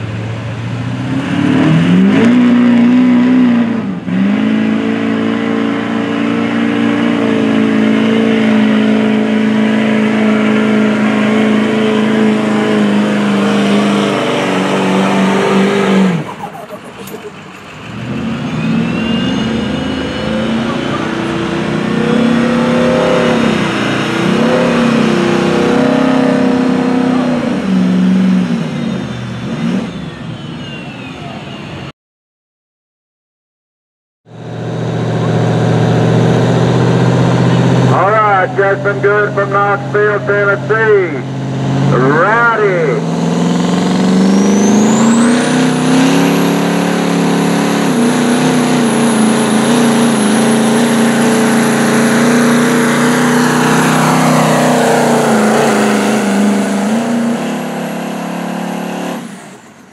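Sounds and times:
diesel truck engine revving under load: 0:00.0 - 0:30.9, 0:34.3 - 0:59.9.

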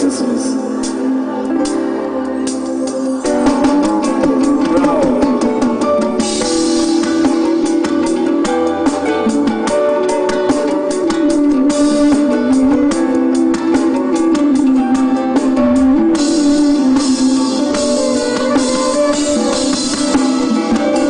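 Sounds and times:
live band music: 0:00.0 - 0:21.0
cymbals: 0:00.7 - 0:21.0.

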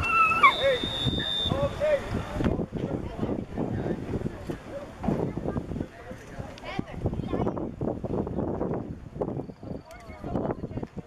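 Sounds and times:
referee whistle blast: 0:00.0 - 0:01.7
people yelling: 0:00.0 - 0:02.0.

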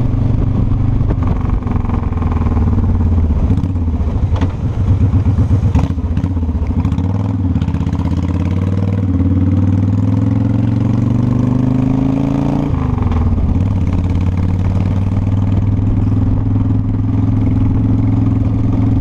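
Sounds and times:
motorcycle engine accelerating: 0:00.0 - 0:19.0.

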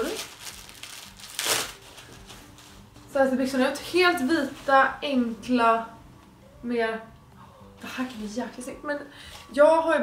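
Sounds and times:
trousers rustling: 0:00.0 - 0:05.5.

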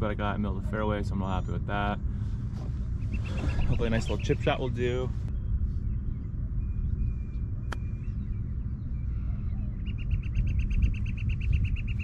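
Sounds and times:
low rumble: 0:00.0 - 0:12.0
bird chirping rapidly: 0:03.0 - 0:04.7, 0:05.8 - 0:12.0.

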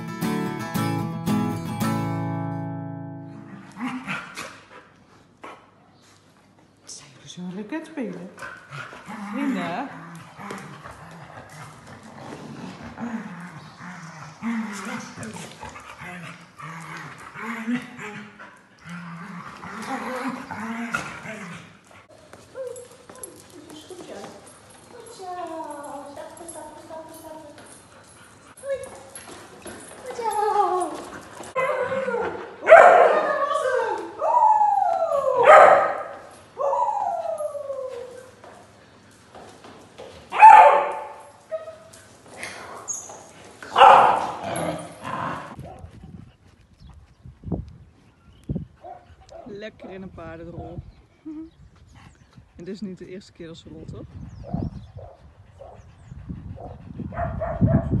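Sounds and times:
dogs grumbling: 0:08.6 - 0:22.1, 0:42.3 - 0:45.8
dogs whining and howling: 0:28.0 - 0:38.6.

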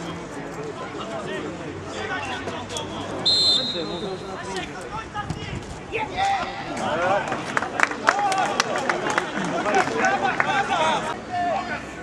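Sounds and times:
spectators talking and calling out: 0:00.0 - 0:12.0
referee's whistle blast: 0:03.2 - 0:04.0.

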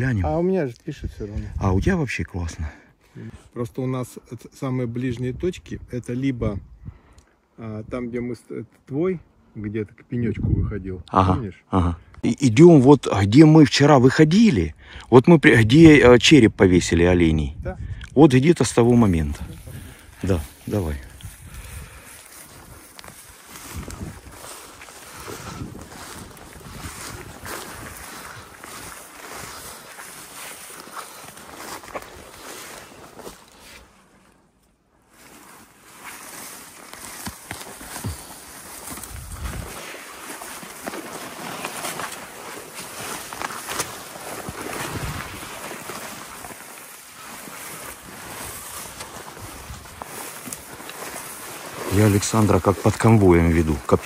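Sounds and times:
wind on microphone: 0:10.4 - 0:10.8, 0:21.0 - 0:22.8, 0:23.6 - 0:24.5, 0:25.1 - 0:28.8, 0:38.9 - 0:39.8, 0:44.6 - 0:45.5, 0:48.3 - 0:50.2
footsteps through shrubs: 0:18.7 - 0:54.0
brush rustling against clothing: 0:19.2 - 0:54.0.

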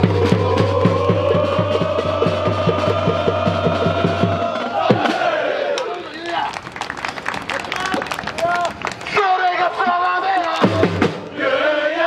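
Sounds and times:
drum beating: 0:00.0 - 0:05.6, 0:10.6 - 0:11.3
supporters chanting: 0:00.0 - 0:06.3, 0:09.5 - 0:12.0
crowd shouting: 0:00.0 - 0:06.6.

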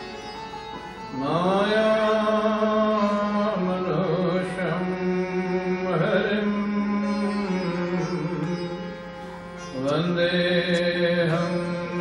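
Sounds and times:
man chanting: 0:01.2 - 0:08.9, 0:09.8 - 0:12.0.

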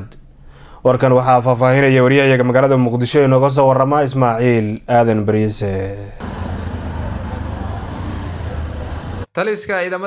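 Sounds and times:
road noise hiss: 0:06.2 - 0:09.3
vehicle engines rumbling: 0:06.2 - 0:09.3.

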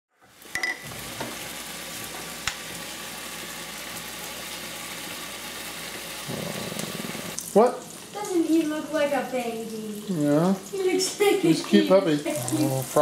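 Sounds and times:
food sizzling in a pan: 0:00.2 - 0:13.0.

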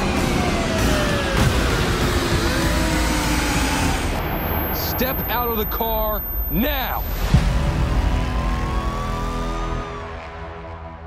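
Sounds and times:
rising tone: 0:00.0 - 0:09.4.

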